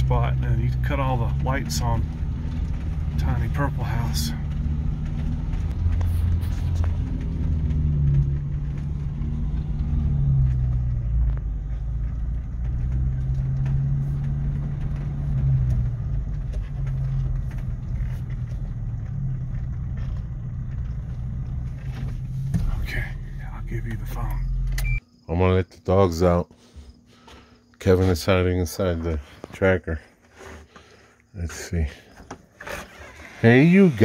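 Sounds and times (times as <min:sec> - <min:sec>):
car engine humming: 0:00.0 - 0:25.0.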